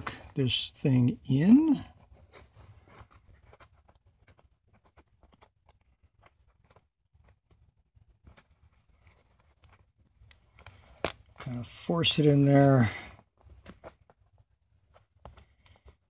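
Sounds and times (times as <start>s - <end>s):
faint plastic clicks and scrapes: 1.9s - 11.5s, 13.1s - 16.0s.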